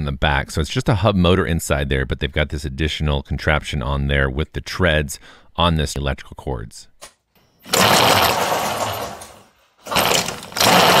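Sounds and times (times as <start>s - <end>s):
rubber track spinning: 7.7s - 11.0s.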